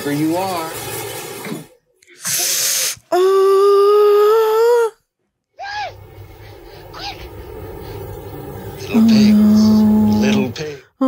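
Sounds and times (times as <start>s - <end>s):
breathy hiss: 2.2s - 3.1s, 5.8s - 10.8s
rising and falling note: 5.8s - 10.6s
low rumble: 5.8s - 10.7s
loud held tone: 7.0s - 10.6s.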